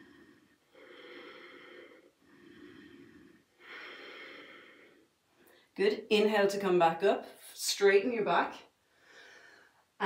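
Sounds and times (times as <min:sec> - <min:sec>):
woman breathing softly: 0:00.0 - 0:05.8, 0:08.9 - 0:09.9.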